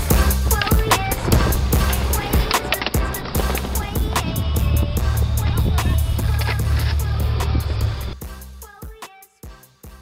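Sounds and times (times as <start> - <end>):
skateboard wheels rolling on concrete: 0.0 - 8.3
hip-hop music: 0.0 - 10.0.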